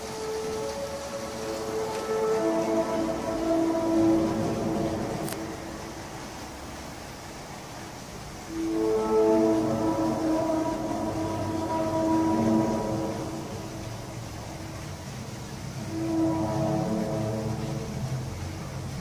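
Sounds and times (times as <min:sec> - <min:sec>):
trumpet-like drone: 0:00.0 - 0:19.0.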